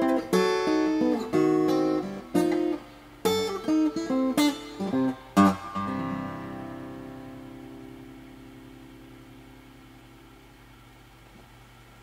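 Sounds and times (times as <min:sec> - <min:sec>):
acoustic guitar notes ringing: 0:00.0 - 0:10.4
faint room noise: 0:00.0 - 0:12.0.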